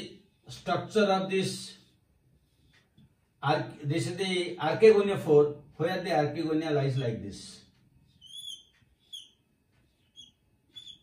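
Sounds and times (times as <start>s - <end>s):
whiteboard marker squeaking: 8.1s - 11.0s.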